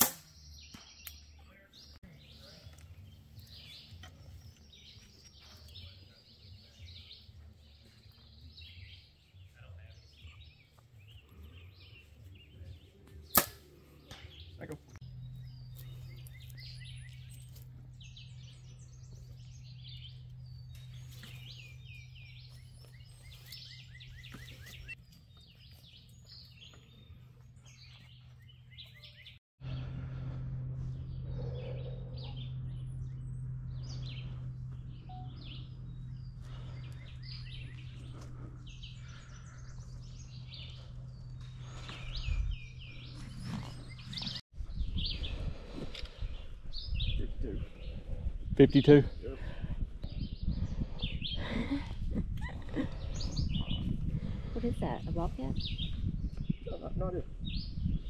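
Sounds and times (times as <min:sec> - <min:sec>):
steady low hum: 0:00.0 - 0:56.5
birds chirping and singing: 0:00.0 - 0:58.0
bow string crack: 0:13.3 - 0:14.3.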